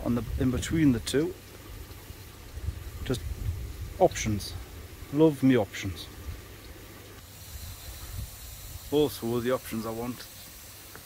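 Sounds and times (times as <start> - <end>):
wind rumbling on microphone: 0.0 - 5.2, 7.5 - 9.1
faint hiss: 0.0 - 11.0.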